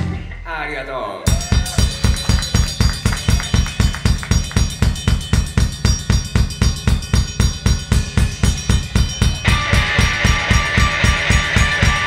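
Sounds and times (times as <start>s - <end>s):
live rock band playing: 9.0s - 12.0s.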